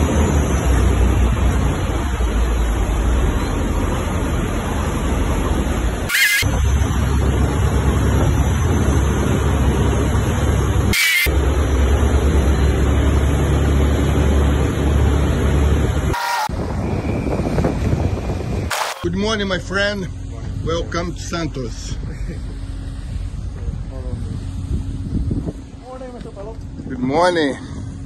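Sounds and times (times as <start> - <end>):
boat engine rumbling: 0.0 - 26.9
short high tones: 6.1 - 6.7, 10.9 - 11.3, 16.1 - 16.6.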